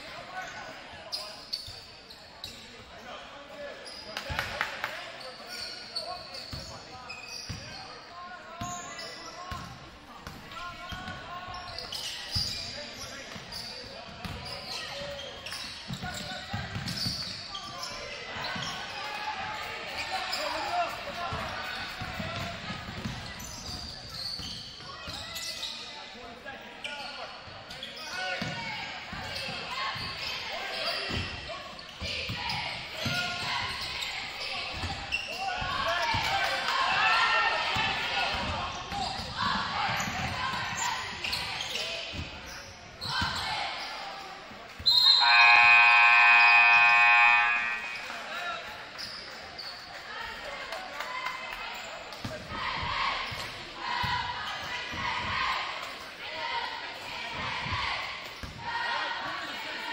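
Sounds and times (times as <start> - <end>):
crowd chatter and shouts: 0.0 - 59.9
scoreboard horn blare: 45.2 - 48.4.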